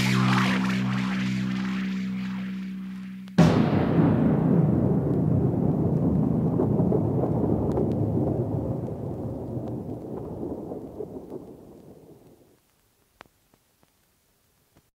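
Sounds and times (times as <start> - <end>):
distorted guitar chord ringing: 0.0 - 3.6
cymbals decaying: 0.0 - 4.1.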